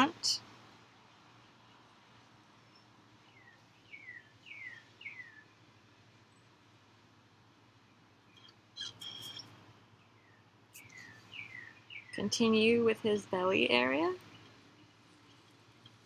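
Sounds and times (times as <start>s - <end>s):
bird whistling: 3.4s - 5.5s, 10.8s - 12.2s.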